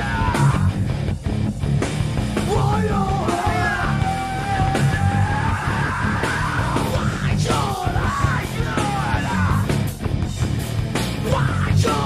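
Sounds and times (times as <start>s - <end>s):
distorted guitars: 0.0s - 12.0s
rock drums: 0.0s - 12.0s
person yelling vocals: 2.5s - 9.7s, 11.2s - 12.0s.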